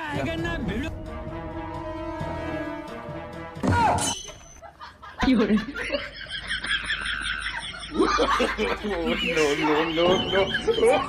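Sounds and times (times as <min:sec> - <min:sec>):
person laughing: 0:04.6 - 0:11.0.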